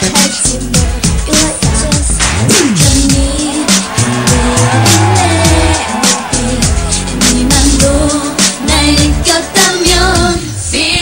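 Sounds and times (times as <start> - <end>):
synth-pop backing track: 0.0 - 11.0
women singing: 0.0 - 11.0.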